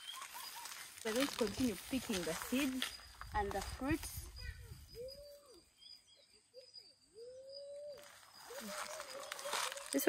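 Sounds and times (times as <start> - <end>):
faint animal calls: 4.2 - 10.0.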